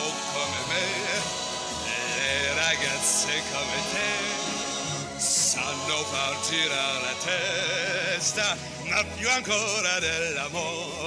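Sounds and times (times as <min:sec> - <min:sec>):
orchestra playing pop accompaniment: 0:00.0 - 0:11.0.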